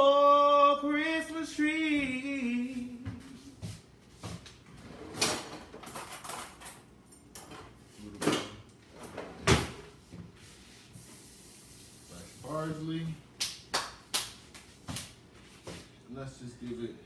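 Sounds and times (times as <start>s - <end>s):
kitchen knocks and clatters: 5.1s - 9.9s.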